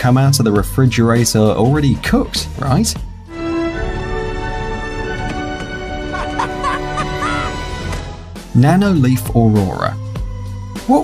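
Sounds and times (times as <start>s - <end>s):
background music sustained tones: 0.0s - 11.0s.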